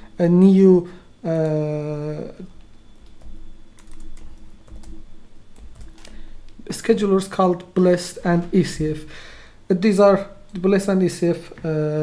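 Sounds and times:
computer keyboard keystrokes: 2.6 - 5.0, 5.6 - 6.6.

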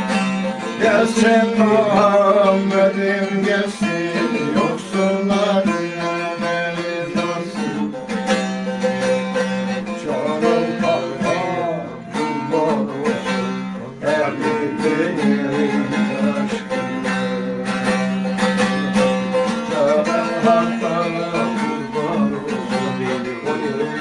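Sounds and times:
long-necked lute strummed and plucked: 0.0 - 24.0.

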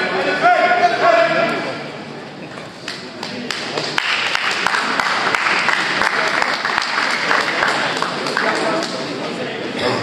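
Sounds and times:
audience applauding: 3.2 - 9.1.

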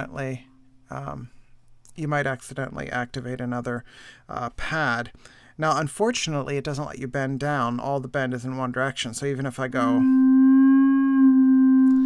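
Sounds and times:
synthesized long pure tone: 10.0 - 12.0.

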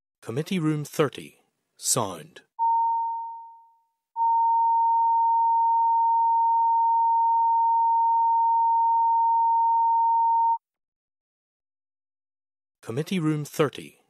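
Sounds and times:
electronic test tone: 2.6 - 10.6.

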